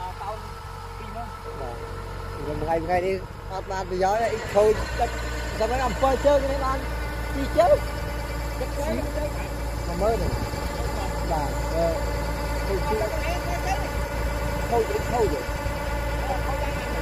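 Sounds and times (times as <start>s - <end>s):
combine harvester diesel engine: 0.0s - 17.0s
people talking: 2.4s - 7.8s, 8.6s - 13.9s, 14.7s - 15.6s, 16.2s - 17.0s.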